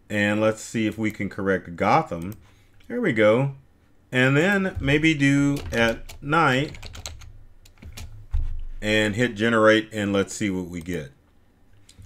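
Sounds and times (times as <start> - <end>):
keyboard keystrokes: 4.7 - 8.2
short low thump: 8.2 - 8.8.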